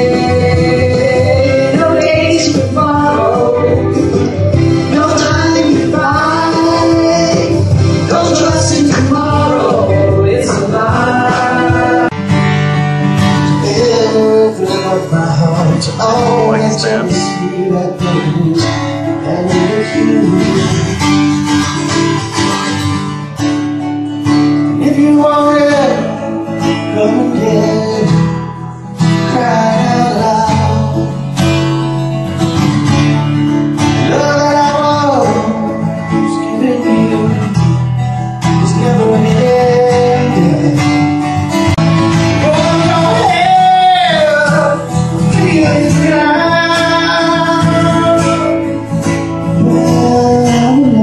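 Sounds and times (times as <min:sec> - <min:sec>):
person singing: 0:00.0 - 0:12.2, 0:13.4 - 0:21.3, 0:24.7 - 0:31.4, 0:33.9 - 0:41.3, 0:42.2 - 0:51.0
strummed acoustic guitar: 0:00.0 - 0:51.0.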